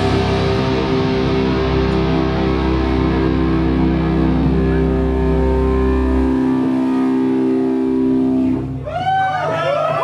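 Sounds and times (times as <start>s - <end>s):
distorted electric guitar chord: 0.0s - 8.8s.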